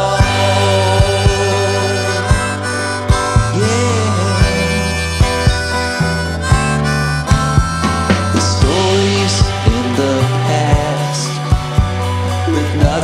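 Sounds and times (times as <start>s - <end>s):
electric bass: 0.0s - 13.0s
harmonica playing: 0.0s - 13.0s
strummed acoustic guitar: 0.0s - 13.0s.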